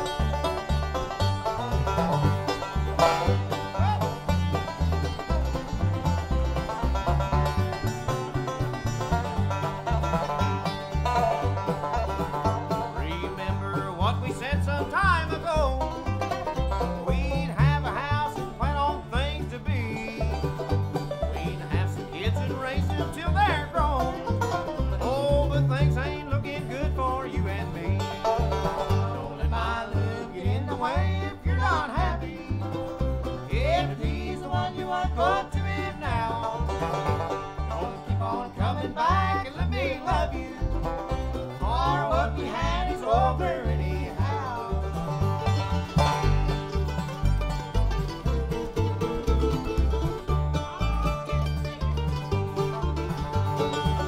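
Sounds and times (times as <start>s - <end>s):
acoustic guitar: 0.0s - 54.0s
banjo: 0.0s - 54.0s
mandolin: 0.0s - 54.0s
upright bass: 0.0s - 54.0s.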